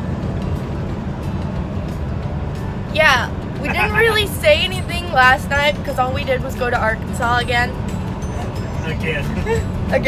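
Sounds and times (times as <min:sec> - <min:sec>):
truck diesel engine rumble: 0:00.0 - 0:10.0.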